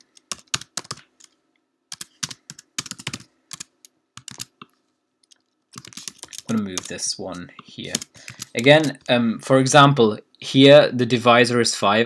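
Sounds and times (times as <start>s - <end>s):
computer keyboard typing: 0.0s - 9.1s.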